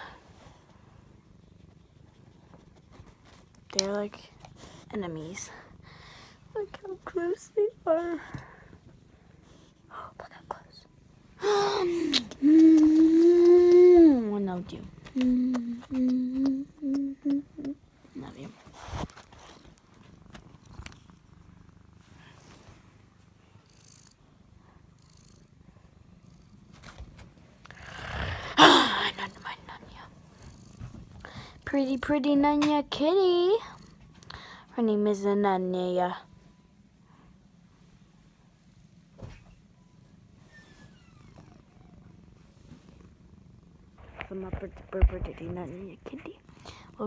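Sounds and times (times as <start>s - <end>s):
cat purring: 0.0s - 47.0s.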